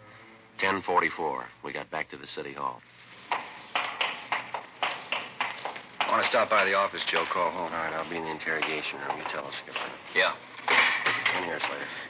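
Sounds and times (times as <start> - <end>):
footsteps on hard floor: 3.2 - 6.4.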